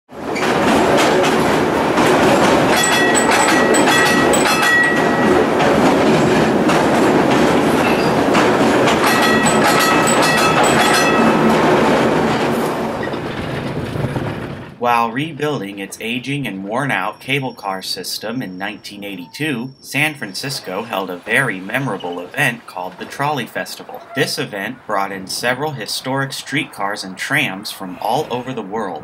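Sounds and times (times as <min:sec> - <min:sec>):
rail car wheels clacking on track: 0:00.1 - 0:14.8, 0:18.5 - 0:29.0
high steady wheel squeal: 0:07.7 - 0:08.3, 0:16.8 - 0:23.2.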